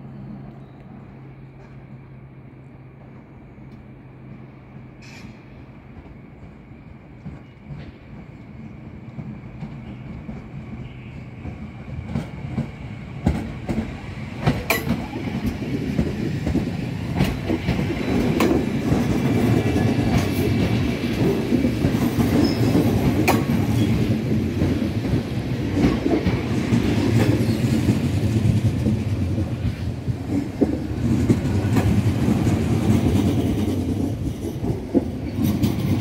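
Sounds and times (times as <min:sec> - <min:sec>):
train rumbling past: 0:00.0 - 0:36.0
wheels clacking over rail joints: 0:11.4 - 0:36.0.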